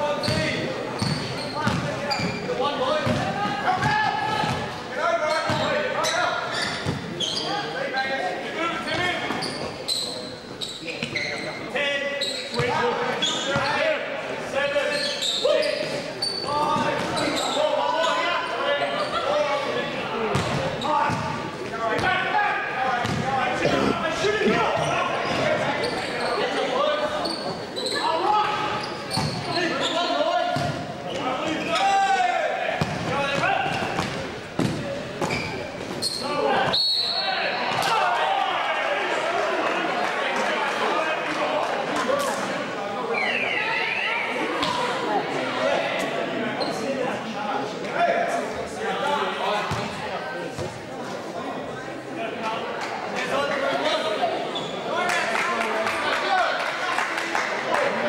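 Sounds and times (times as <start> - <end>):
voices calling out in a hall: 0.0 - 58.0
basketball bouncing on wooden court: 1.0 - 1.9, 23.0 - 23.2.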